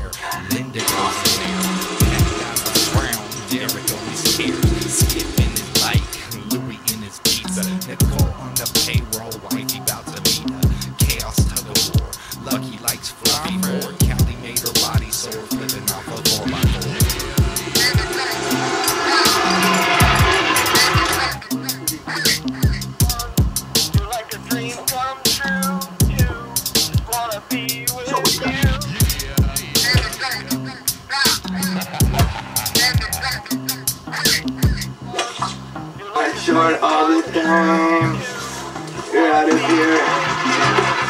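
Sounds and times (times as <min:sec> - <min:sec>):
hi-hats ticking: 0:00.0 - 0:35.1
person singing: 0:00.0 - 0:35.1, 0:36.0 - 0:41.0
hip-hop beat: 0:00.0 - 0:35.2
held bass line: 0:00.6 - 0:08.7, 0:13.4 - 0:24.8, 0:25.4 - 0:30.8, 0:31.4 - 0:36.7
deep kick drums: 0:14.0 - 0:14.4.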